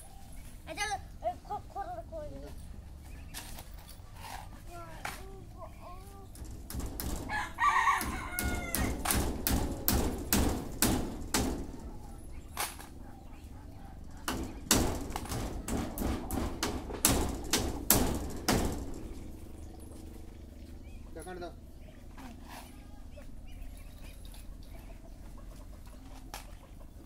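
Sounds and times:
chicken calling: 7.2 - 9.1.

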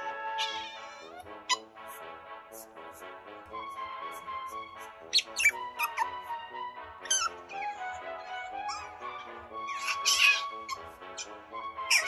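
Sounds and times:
otter squeaking and chirping: 0.0 - 1.7, 5.1 - 6.2, 7.0 - 12.0
background music: 0.0 - 12.0.

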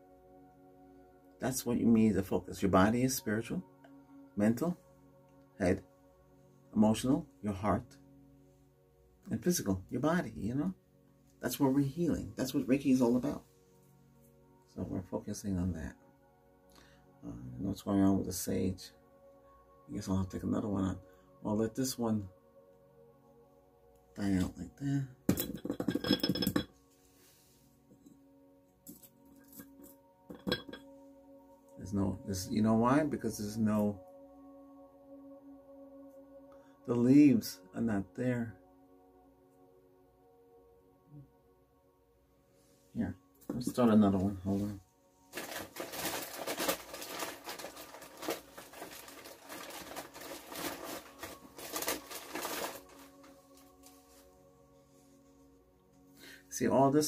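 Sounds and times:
faint background music: 0.0 - 57.0
dry leaves crumpled by hand: 45.3 - 53.7.

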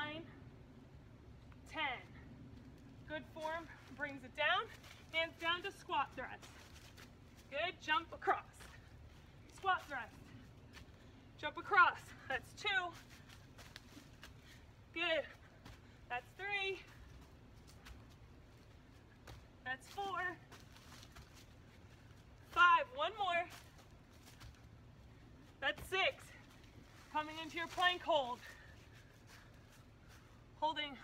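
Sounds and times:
scuffs on dry leaves: 6.4 - 7.5, 19.9 - 22.5.

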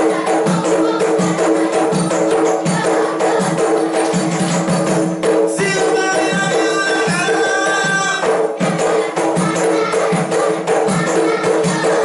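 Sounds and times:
frame drum and hand percussion: 0.0 - 12.0.

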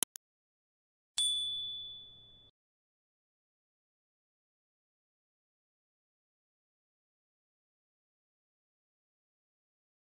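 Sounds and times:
quick clicks: 0.0 - 0.2
high notification bell ding: 1.2 - 2.5.

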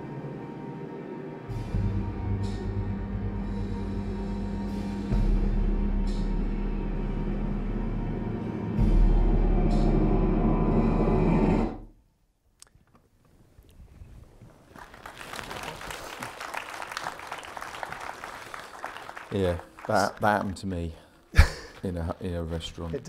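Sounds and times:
ominous film score drone: 0.0 - 12.0
audience applause: 14.6 - 20.7.

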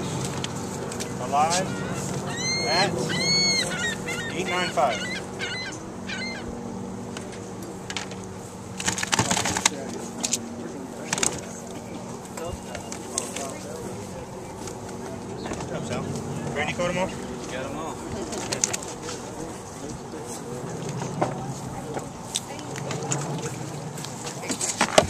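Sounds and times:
faint background voices: 0.0 - 25.0
steady low hum: 0.0 - 25.0.

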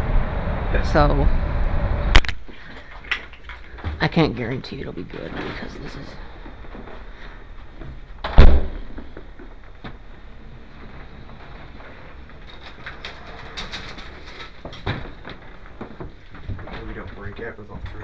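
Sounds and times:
door shutting with heavy thud: 8.2 - 9.2.

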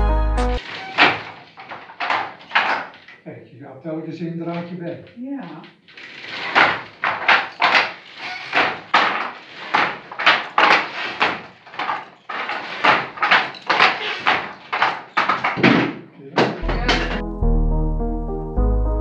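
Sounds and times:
background music with held notes: 0.0 - 0.6, 16.6 - 19.0
person talking: 16.2 - 17.2.

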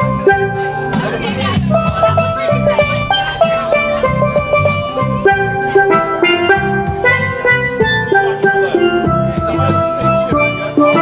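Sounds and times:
bass and drums beat: 0.0 - 11.0
steelpan melody: 0.0 - 11.0.

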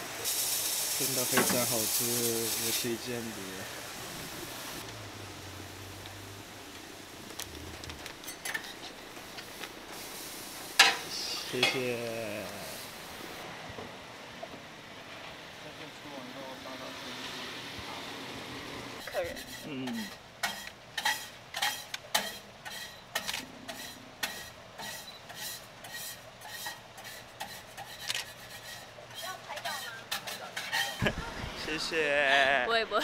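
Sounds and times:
food sizzling on a griddle: 0.0 - 13.4, 16.4 - 32.6
cooking utensils clicking and tapping: 8.1 - 9.7, 19.4 - 31.0
person speaking: 11.1 - 12.8, 31.0 - 33.0.

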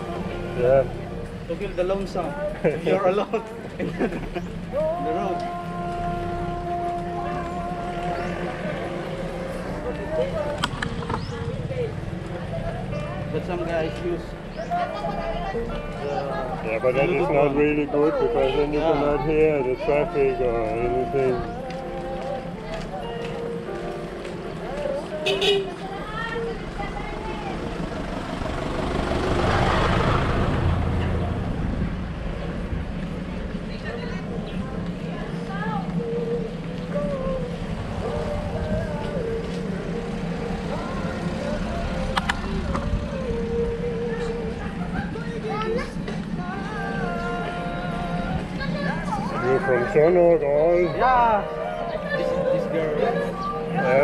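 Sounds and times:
bicycle road rumble: 0.0 - 54.0
wind: 0.0 - 54.0
small truck passing: 5.6 - 21.6, 23.5 - 54.0.

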